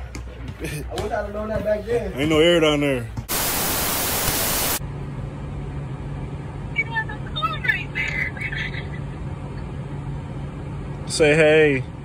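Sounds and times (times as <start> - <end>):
tv static white noise: 3.3 - 4.8.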